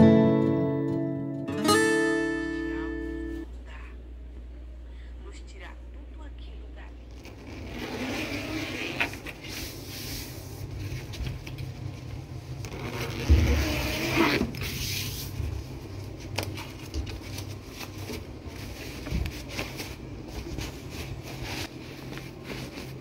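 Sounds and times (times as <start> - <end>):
cloth rustling and scraping: 7.1 - 12.0, 12.6 - 23.0.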